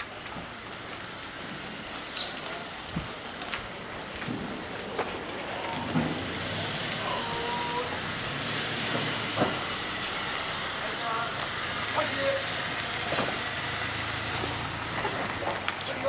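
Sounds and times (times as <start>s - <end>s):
outdoor group noise: 0.0s - 16.0s
brief voices: 5.4s - 8.0s.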